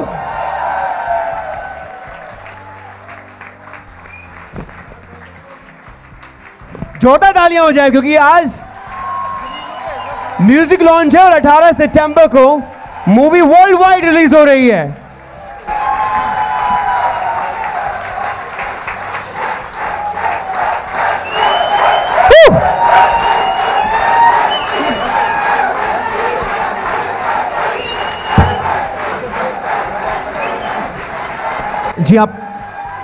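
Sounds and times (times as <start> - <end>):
audience clapping: 0.0 - 7.7, 8.6 - 13.5, 15.6 - 33.0
audience shouting: 19.8 - 33.0.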